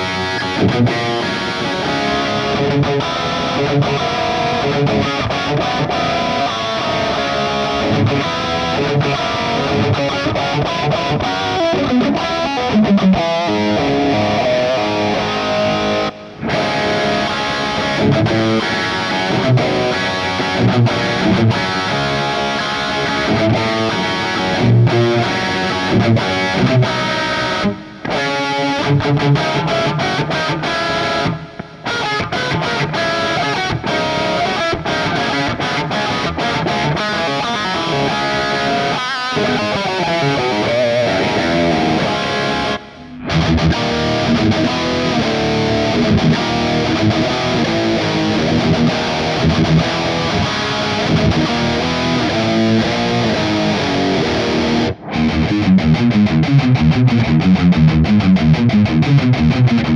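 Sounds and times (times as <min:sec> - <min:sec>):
distorted electric guitar riffs: 0:00.0 - 0:59.9.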